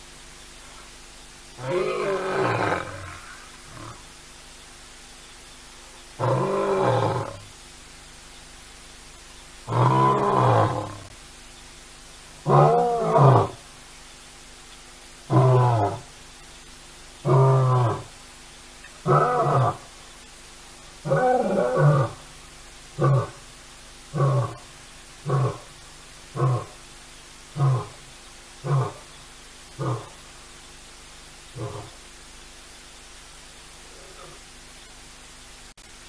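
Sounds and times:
lion roaring: 1.6s - 4.1s, 6.2s - 7.4s, 9.7s - 11.1s, 12.4s - 13.6s, 15.3s - 16.1s, 17.2s - 18.1s, 19.0s - 19.8s, 21.0s - 22.2s, 23.0s - 23.4s, 24.1s - 25.7s, 26.3s - 26.8s, 27.5s - 28.0s, 28.6s - 29.1s, 29.8s - 30.2s, 31.6s - 32.0s, 33.9s - 34.4s.

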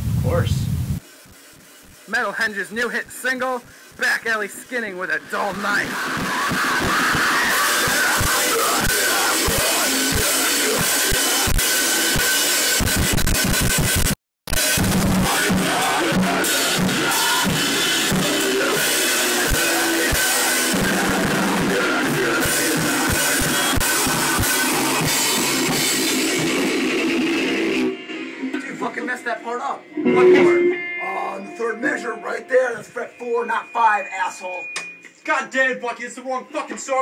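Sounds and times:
drum kit with cymbals: 3.9s - 29.0s
electric guitar: 4.6s - 32.9s
person singing into microphone: 7.2s - 11.5s, 15.2s - 17.8s.

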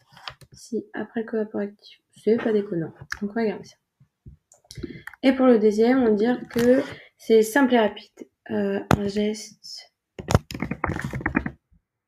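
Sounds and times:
computer keyboard typing: 10.2s - 11.6s.

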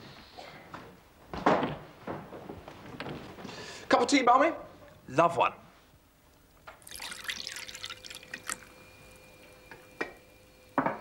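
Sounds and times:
water pouring into teapot: 6.8s - 10.9s.

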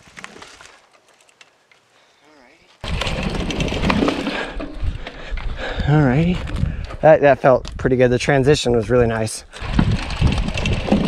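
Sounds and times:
bike tyres rumbling and rattling: 2.8s - 8.2s, 9.5s - 11.0s
wind on microphone: 4.3s - 7.0s, 9.6s - 11.0s.

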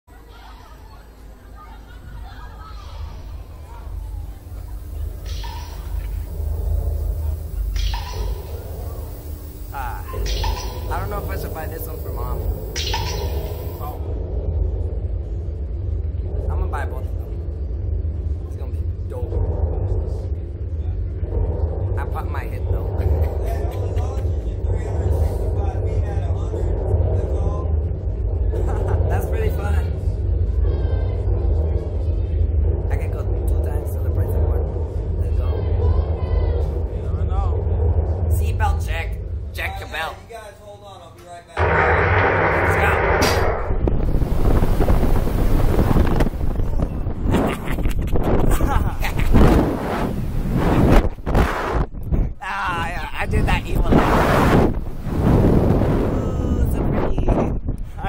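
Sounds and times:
people laughing: 0.2s - 5.2s, 23.0s - 24.5s, 28.5s - 29.4s, 47.1s - 49.6s
riders laughing: 1.4s - 3.2s, 28.6s - 29.2s, 47.1s - 49.6s
people talking: 9.7s - 12.8s, 16.5s - 17.3s, 22.0s - 27.7s, 28.6s - 30.0s, 32.9s - 37.7s, 42.5s - 43.5s, 46.6s - 49.6s, 52.4s - 54.3s, 56.1s - 58.0s
sudden loud burst: 41.6s - 47.6s
wind buffeting microphone: 42.2s - 58.0s.

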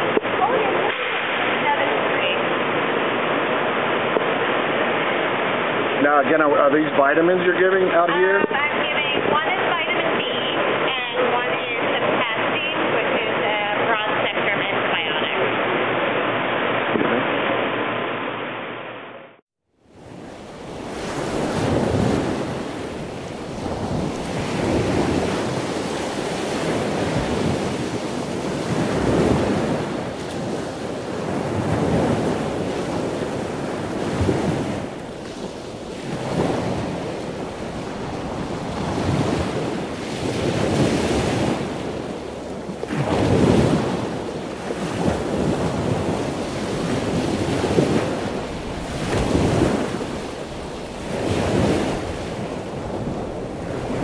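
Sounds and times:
water rushing and sloshing: 0.0s - 54.0s.

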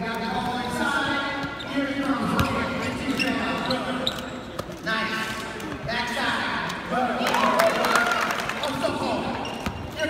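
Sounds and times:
crowd chatter in echoing arena: 0.0s - 10.0s.

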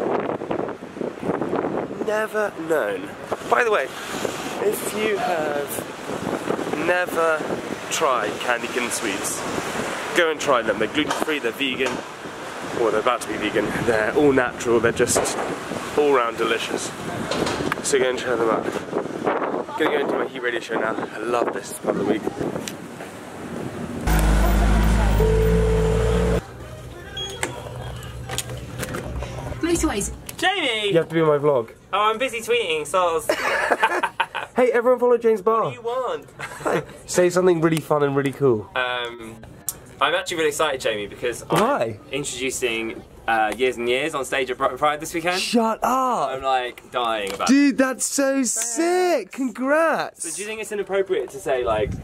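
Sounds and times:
wind buffeting microphone: 0.0s - 2.1s, 4.2s - 7.9s, 16.8s - 24.1s, 51.6s - 52.0s
door intercom buzzing: 24.1s - 26.4s.

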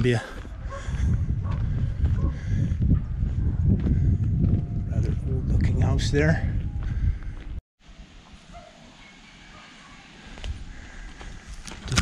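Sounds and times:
footsteps on a road: 0.0s - 5.4s, 6.4s - 7.6s, 9.5s - 11.9s.

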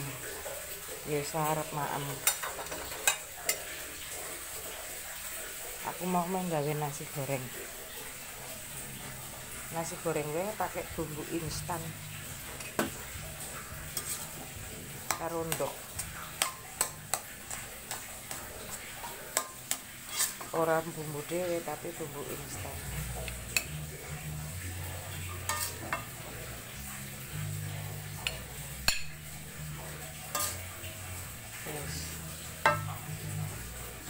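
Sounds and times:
rice sizzling in a wok: 0.0s - 34.0s
crockery clinking: 25.4s - 26.1s, 32.6s - 33.0s.

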